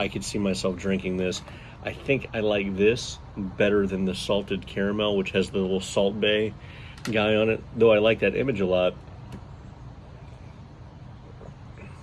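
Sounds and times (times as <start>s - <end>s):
faint outdoor rumble: 0.0s - 12.0s.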